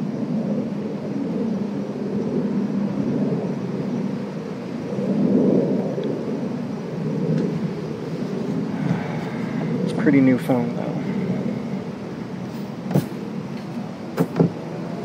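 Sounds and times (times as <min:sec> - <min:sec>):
low rumbling background noise: 0:00.0 - 0:15.0.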